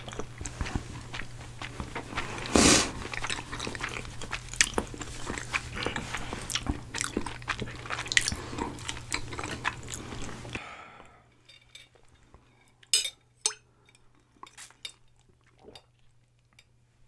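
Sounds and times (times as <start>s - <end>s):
banana being chewed: 0.0s - 10.6s
wet mouth clicks and smacks: 3.0s - 10.0s.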